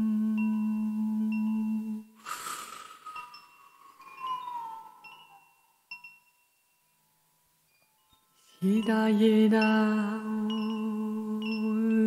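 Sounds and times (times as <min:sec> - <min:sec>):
chime tinkling: 0:00.3 - 0:12.0
rush of noise: 0:02.2 - 0:04.2.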